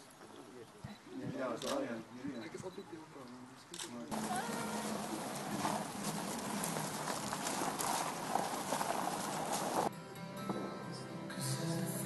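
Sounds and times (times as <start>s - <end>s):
footsteps crunching on gravel: 4.1s - 9.9s.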